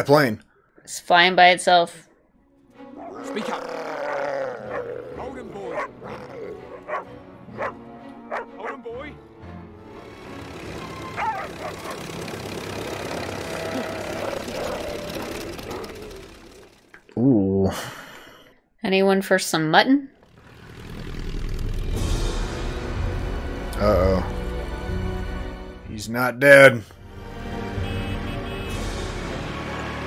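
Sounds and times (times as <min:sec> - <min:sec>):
film music score: 0:01.2 - 0:18.4, 0:20.2 - 0:30.0
dog barking and snarling: 0:02.9 - 0:08.8, 0:11.0 - 0:16.8.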